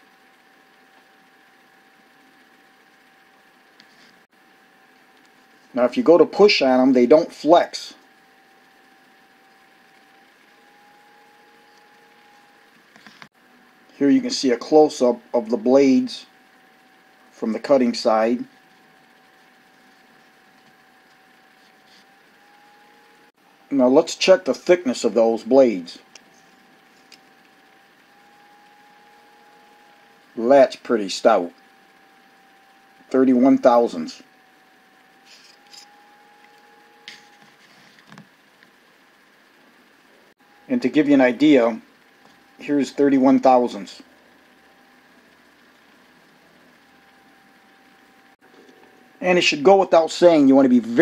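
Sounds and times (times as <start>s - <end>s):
thin steady hum: 0.0s - 51.0s.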